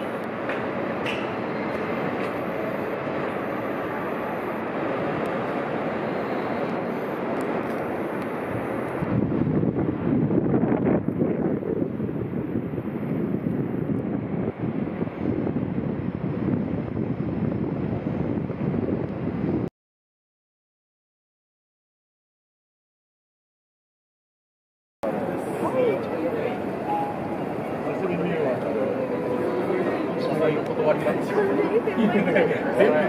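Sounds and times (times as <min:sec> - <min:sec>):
city background noise: 0:00.0 - 0:19.7, 0:25.0 - 0:33.0
wind buffeting microphone: 0:00.0 - 0:19.7.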